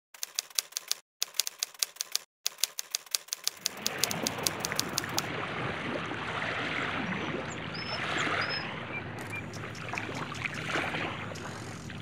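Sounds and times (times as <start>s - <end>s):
rapid even clicking: 0.2s - 5.3s.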